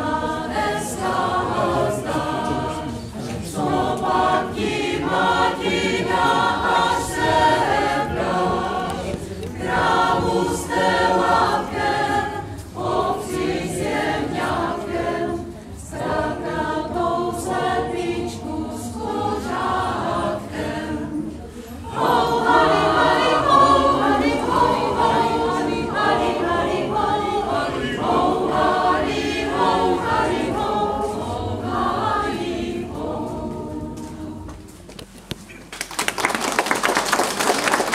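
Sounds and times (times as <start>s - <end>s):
mixed choir singing folk song: 0.0s - 35.0s.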